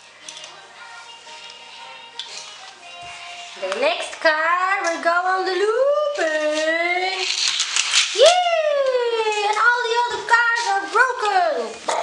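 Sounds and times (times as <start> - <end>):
toy car rattling on plastic track: 6.1 - 11.3.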